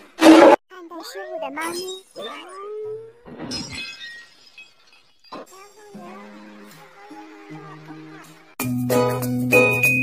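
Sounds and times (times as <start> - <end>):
glass shattering: 3.3 - 5.6.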